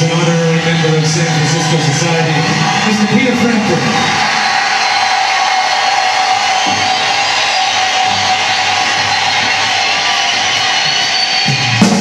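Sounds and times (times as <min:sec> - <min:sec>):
crowd cheering: 0:00.0 - 0:12.0
loud drum hits: 0:06.4 - 0:10.5.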